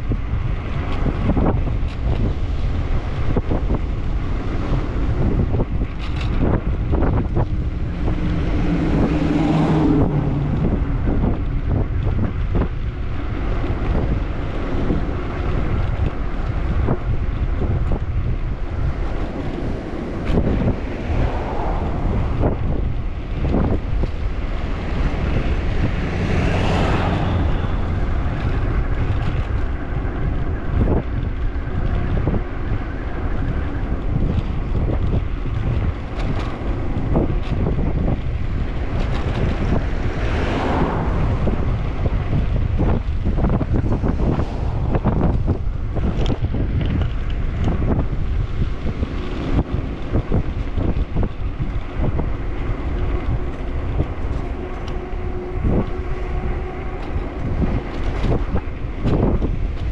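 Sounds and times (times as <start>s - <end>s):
bicycle knocks and rattles: 0.0s - 9.4s, 10.0s - 59.9s
wind buffeting microphone: 0.0s - 59.9s.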